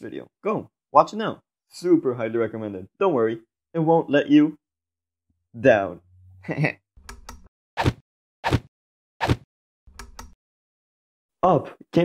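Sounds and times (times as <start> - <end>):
person laughing: 6.4 - 6.8.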